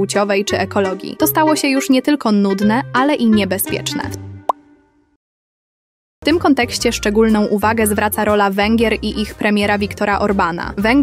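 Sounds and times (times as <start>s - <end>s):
background music: 0.0s - 5.2s, 6.2s - 11.0s.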